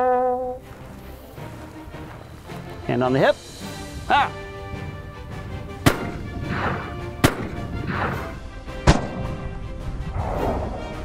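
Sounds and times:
background music: 0.0 - 11.0
pistol gunshots: 5.8 - 9.4.

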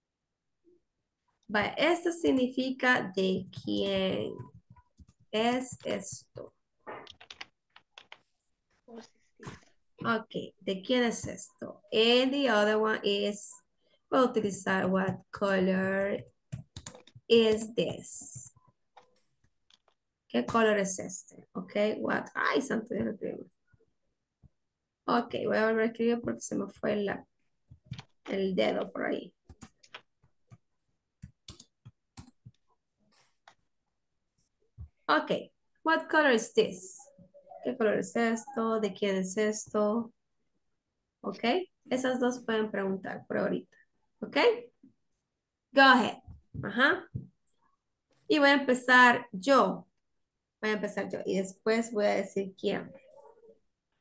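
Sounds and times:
keyboard typing: 3.2 - 8.4, 14.4 - 20.6, 26.3 - 33.6.

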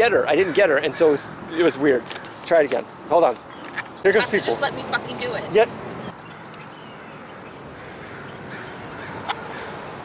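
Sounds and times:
faint bird calls: 6.0 - 10.0.

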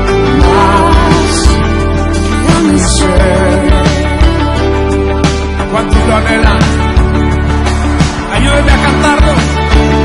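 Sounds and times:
electric guitar: 0.0 - 10.0
keyboards: 0.0 - 10.0
piano: 0.0 - 10.0.

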